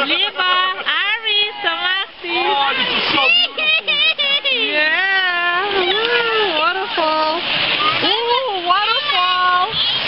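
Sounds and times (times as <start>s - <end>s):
water splashing in a stream: 0.0s - 10.0s.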